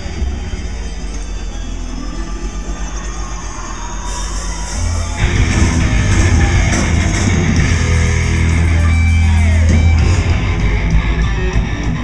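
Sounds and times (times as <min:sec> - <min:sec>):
live thrash metal music: 0:04.0 - 0:12.0.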